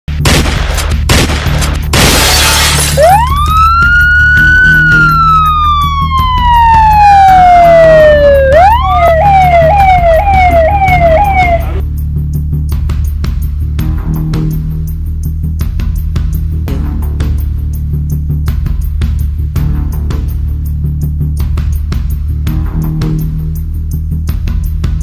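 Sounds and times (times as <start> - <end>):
sharp hits: 0.1 - 3.5
glass breaking: 1.9 - 3.2
police siren: 3.0 - 11.8
low music drone: 3.0 - 12.3.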